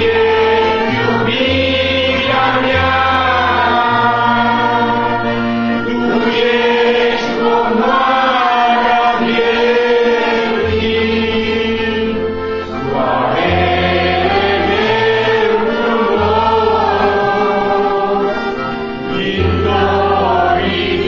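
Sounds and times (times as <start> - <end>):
group singing worship song: 0.0 - 21.0
sustained low accompaniment notes: 0.0 - 21.0.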